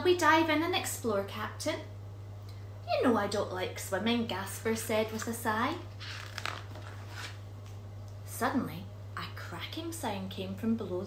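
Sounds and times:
book page turning: 5.0s - 7.8s.

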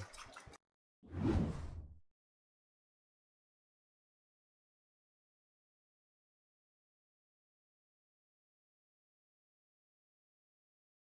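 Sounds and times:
whoosh effect: 1.1s - 2.0s.

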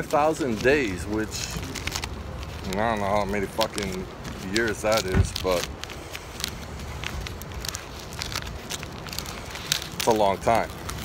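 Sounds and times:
low background rumble: 0.0s - 11.0s
paper and cardboard rustling: 0.0s - 11.0s.

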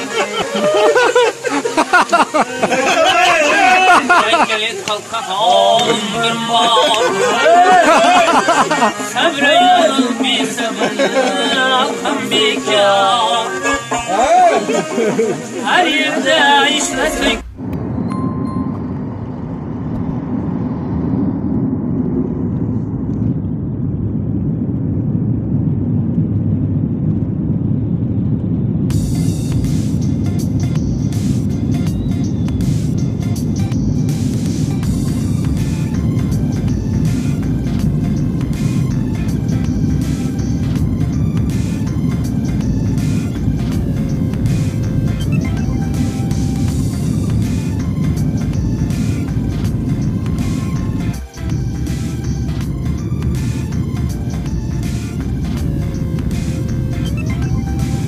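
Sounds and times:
music: 0.0s - 4.6s, 5.4s - 18.8s, 28.9s - 58.0s
jet engine and runway rumble: 2.9s - 12.8s, 17.2s - 58.0s.

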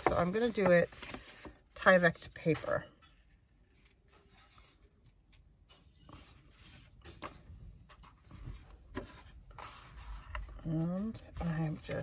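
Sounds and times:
rustling of file folder card: 0.0s - 2.5s.

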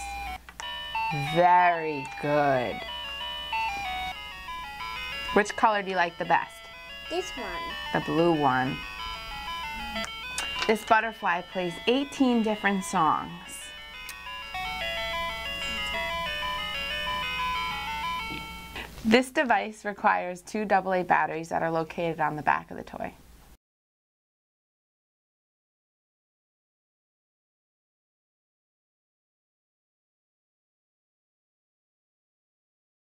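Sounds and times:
toy playing beeping electronic tune: 0.0s - 18.8s.

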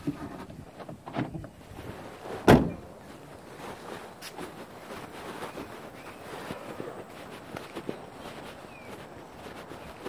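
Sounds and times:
car door shutting: 2.4s - 2.9s.

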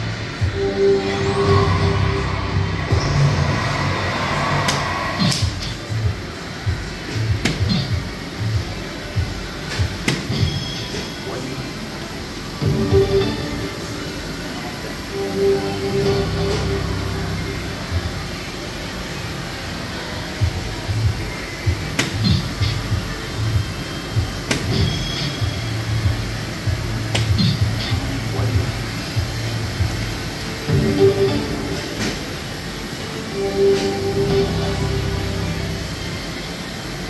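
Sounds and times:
background music: 0.0s - 10.6s, 12.4s - 37.0s
short electronic sound effect: 0.4s - 5.5s
darts hitting electronic dartboard: 7.4s - 7.9s, 9.7s - 10.6s, 21.9s - 22.4s, 24.4s - 25.2s, 27.1s - 27.6s.

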